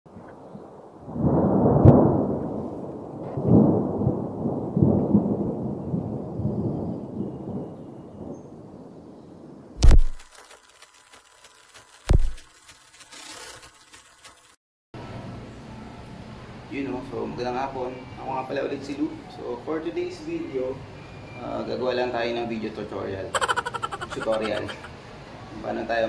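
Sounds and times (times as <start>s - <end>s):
low thunder-like rumble: 1.0s - 7.6s
sharp click: 9.8s - 10.4s, 12.0s - 12.8s.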